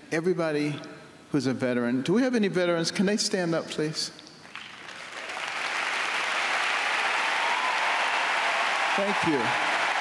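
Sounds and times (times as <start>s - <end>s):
arena crowd applauding: 4.5s - 10.0s.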